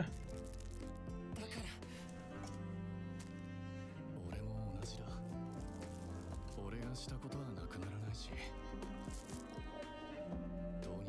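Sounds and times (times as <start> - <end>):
background music with held notes: 0.0 - 11.0
person speaking: 4.2 - 8.4.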